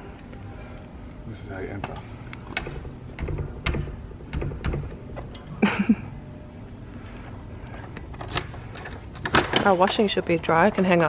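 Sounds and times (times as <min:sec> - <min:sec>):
door lock clicking and clunking: 0:01.8 - 0:05.5.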